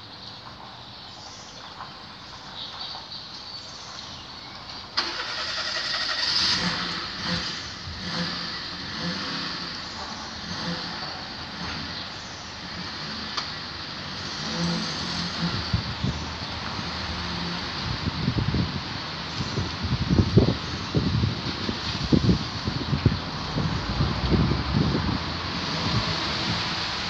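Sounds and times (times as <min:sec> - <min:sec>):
engine running: 0:04.9 - 0:27.0.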